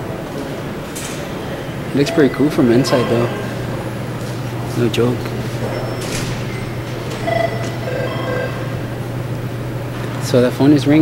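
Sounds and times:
steady low hum: 0.0s - 11.0s
telephone ringing electronic trill: 2.0s - 4.0s, 5.7s - 9.1s.

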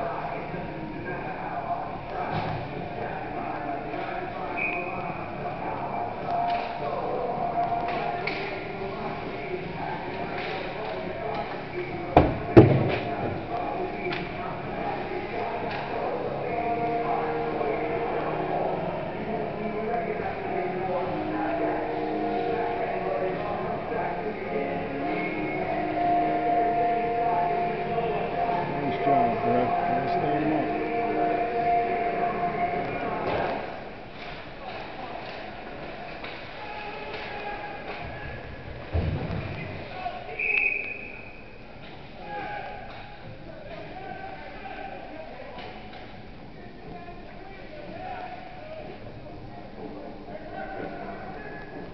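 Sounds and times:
spectators' voices: 0.0s - 51.9s
crowd shouting and cheering: 14.8s - 33.9s
referee whistle blast: 40.3s - 41.5s.

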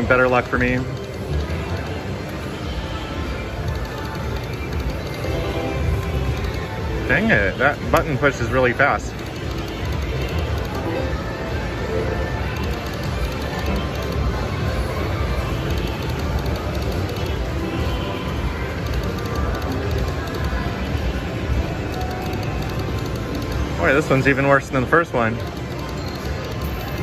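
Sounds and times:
casino background noise: 0.0s - 27.0s.

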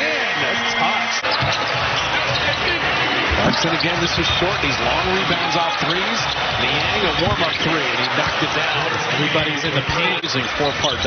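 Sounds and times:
arena noise: 0.0s - 11.0s.

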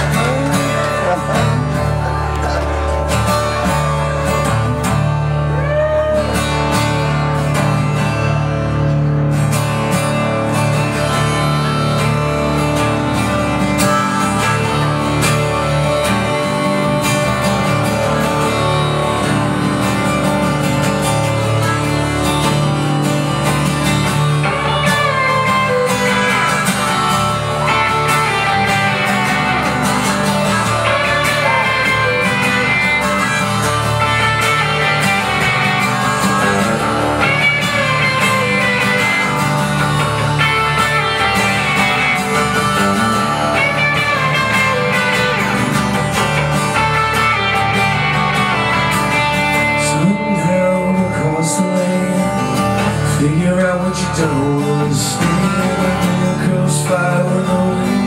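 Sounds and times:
electric guitar playing: 0.0s - 58.0s
strummed acoustic guitar: 0.0s - 58.0s.

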